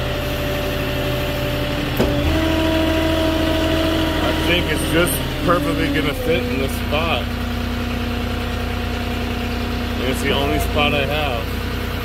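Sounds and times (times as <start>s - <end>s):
forklift engine running: 0.0s - 12.0s.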